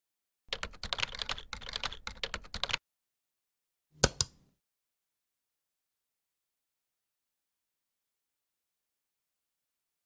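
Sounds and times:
keyboard typing clicks: 0.5 - 2.8, 4.0 - 4.4.

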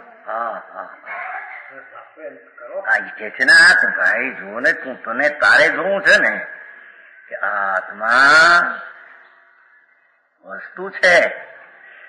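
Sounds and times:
recording whine and hiss: 0.0 - 12.0.

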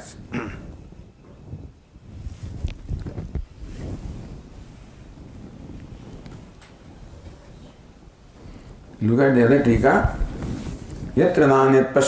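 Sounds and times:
breath puffs on microphone: 0.6 - 6.4, 8.3 - 9.0, 10.2 - 11.2
breathing and throat noises: 8.4 - 8.9.

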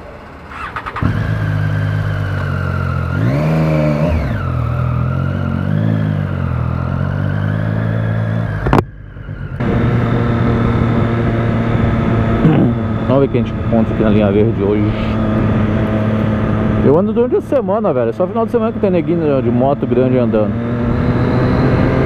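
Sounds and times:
motorcycle engine starting and revving: 0.1 - 22.0.

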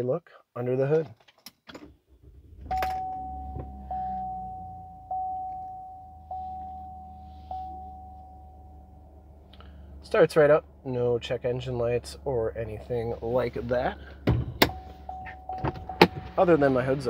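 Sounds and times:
car engine starting and idling: 1.8 - 17.0
dashboard warning chime: 2.6 - 8.9, 13.9 - 17.0.

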